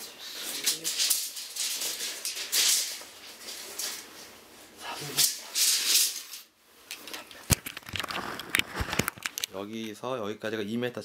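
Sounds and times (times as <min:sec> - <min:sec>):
tape measure rattling and rustling: 0:00.4 - 0:04.3, 0:05.0 - 0:09.6.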